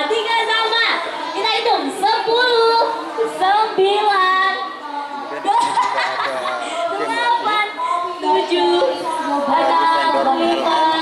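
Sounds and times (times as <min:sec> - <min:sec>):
person singing unaccompanied: 0:07.1 - 0:11.0.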